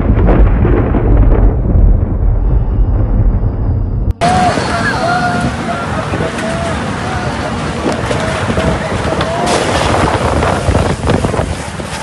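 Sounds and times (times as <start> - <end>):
storm wind buffeting microphone: 0.0 - 12.0
people calling out: 4.2 - 9.7.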